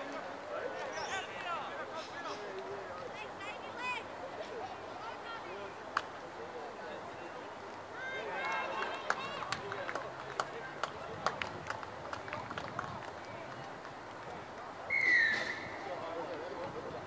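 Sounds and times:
voices of players and onlookers: 0:00.0 - 0:17.0
referee's whistle blast: 0:14.9 - 0:15.7.

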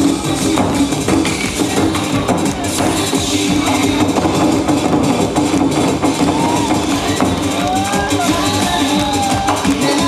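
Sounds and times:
loud accompanying music: 0:00.0 - 0:10.0.

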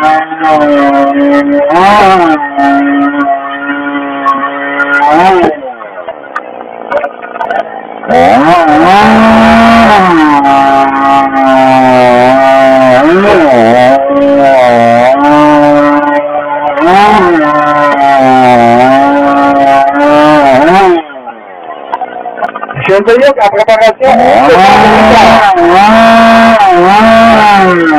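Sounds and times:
chainsaw cutting log: 0:00.0 - 0:27.9.

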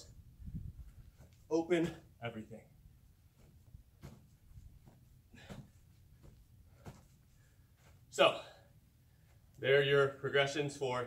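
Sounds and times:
faint thuds of jumping on turf: 0:03.4 - 0:07.1.

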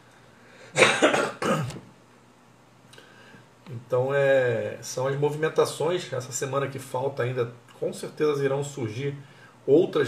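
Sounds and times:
man coughing: 0:00.7 - 0:01.8.

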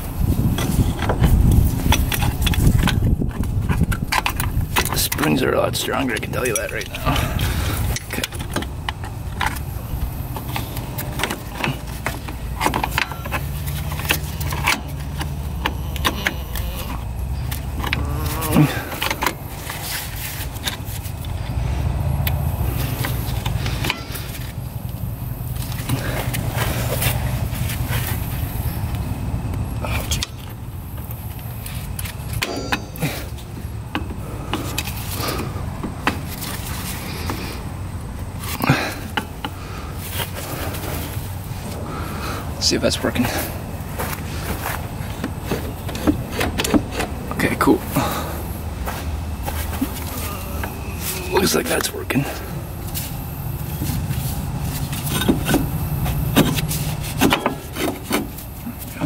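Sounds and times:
metal clinks and scrapes: 0:49.4 - 0:59.0.

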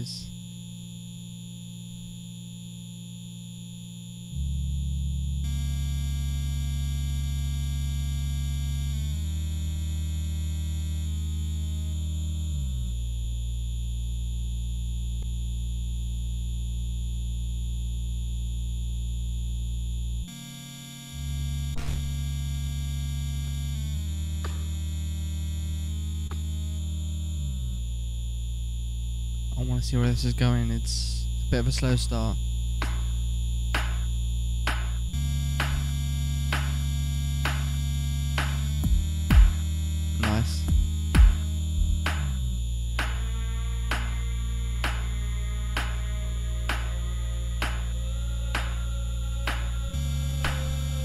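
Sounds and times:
layered vocal loops: 0:37.4 - 0:42.4, 0:43.0 - 0:51.0.

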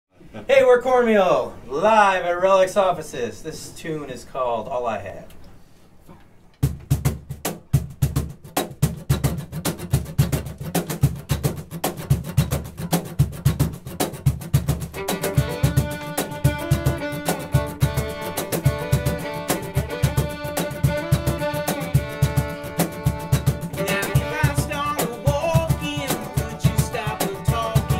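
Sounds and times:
quick percussive rhythm: 0:06.6 - 0:27.9
acoustic string band tune: 0:08.4 - 0:27.9
plucked upright bass: 0:08.8 - 0:27.9
bowed fiddle melody: 0:14.9 - 0:27.9.

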